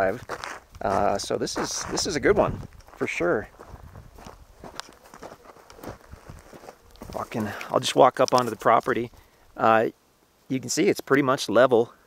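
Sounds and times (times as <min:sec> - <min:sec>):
footsteps on gravelly dirt: 0:00.0 - 0:09.2.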